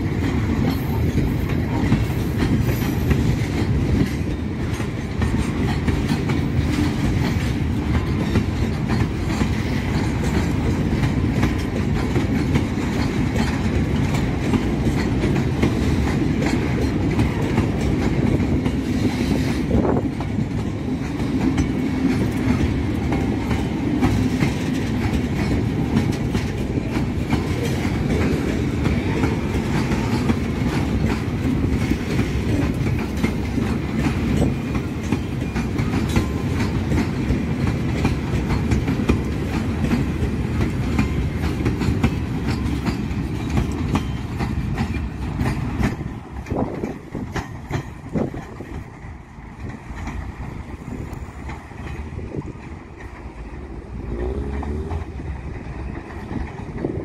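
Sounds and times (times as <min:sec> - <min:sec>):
clickety-clack over rail joints: 0:00.0 - 0:57.0
freight train wheels rumbling: 0:00.0 - 0:57.0.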